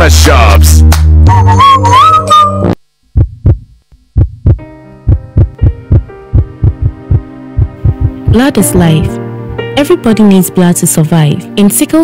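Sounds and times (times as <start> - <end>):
steady low hum: 2.7 - 8.5
heartbeat thumps: 3.1 - 8.5.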